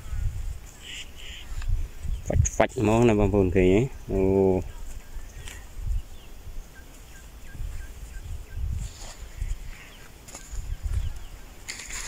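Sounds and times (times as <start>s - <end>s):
rustle: 0.0s - 12.0s.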